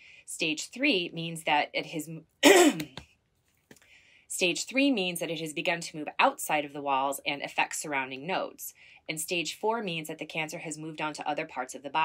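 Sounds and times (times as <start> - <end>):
woman clearing her throat: 2.4 - 3.0.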